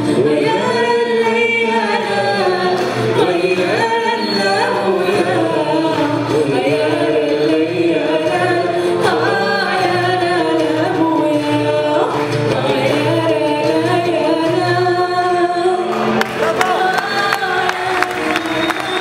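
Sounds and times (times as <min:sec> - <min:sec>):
woman singing into a microphone: 0:00.0 - 0:19.0.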